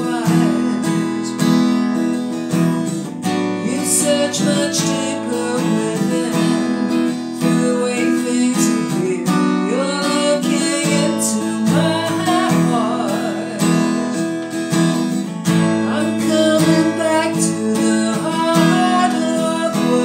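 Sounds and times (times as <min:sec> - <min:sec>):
woman singing: 0:00.0 - 0:01.8, 0:03.2 - 0:20.0
acoustic guitar strumming: 0:00.0 - 0:20.0.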